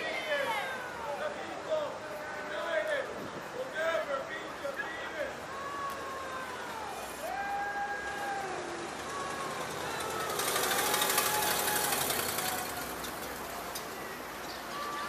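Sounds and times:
distant voices calling out: 0.0s - 15.0s
vehicle passing: 8.0s - 15.0s.

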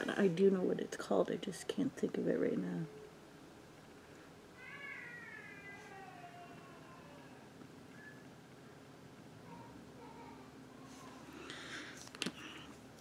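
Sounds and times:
cat meowing: 4.6s - 7.5s.

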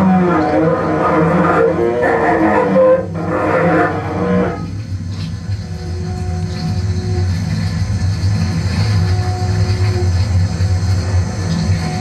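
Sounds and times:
bowed cello with electronics: 0.0s - 5.0s
low steady drone: 0.0s - 12.0s.

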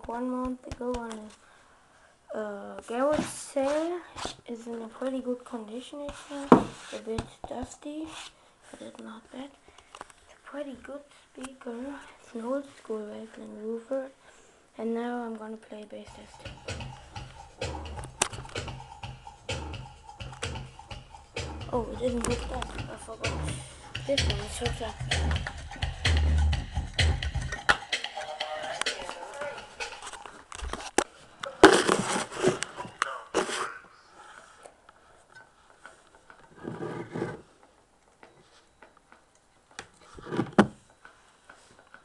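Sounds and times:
low bass notes beat: 16.1s - 30.2s
scraping and rustling: 31.6s - 33.6s.

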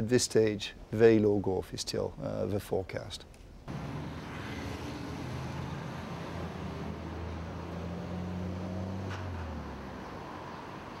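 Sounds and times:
city street traffic: 3.7s - 11.0s
vehicle engine humming low: 3.7s - 11.0s.

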